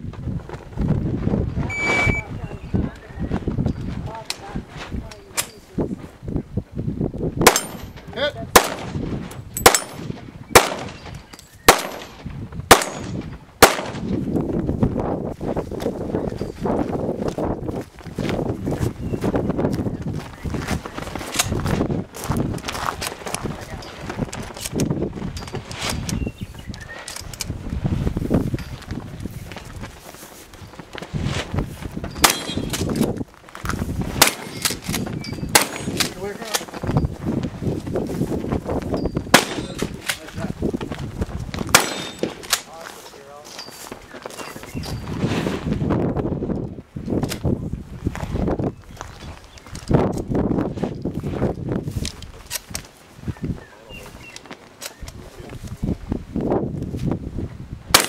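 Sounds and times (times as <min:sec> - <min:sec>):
gunshots: 0:07.4 - 0:09.0, 0:09.6 - 0:14.2, 0:32.2 - 0:32.8, 0:34.2 - 0:34.9, 0:35.5 - 0:36.2, 0:39.3 - 0:40.1, 0:41.7 - 0:42.7.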